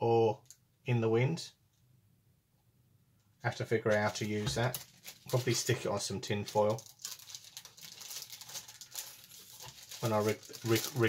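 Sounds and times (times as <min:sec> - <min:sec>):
paper and plastic bag rustling: 0:03.8 - 0:11.0.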